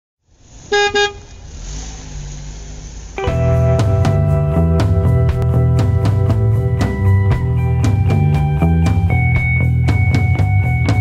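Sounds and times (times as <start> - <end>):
steady low rumble: 0.3 - 11.0
car horn toots: 0.7 - 1.4.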